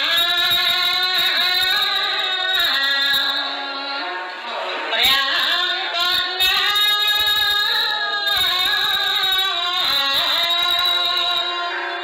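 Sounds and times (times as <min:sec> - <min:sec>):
woman chanting into microphone: 0:00.0 - 0:12.0.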